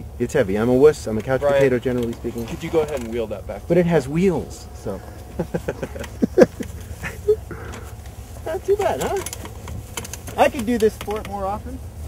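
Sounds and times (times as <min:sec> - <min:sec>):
steady low rumble: 0:03.0 - 0:10.6
man laughing: 0:04.9 - 0:08.0.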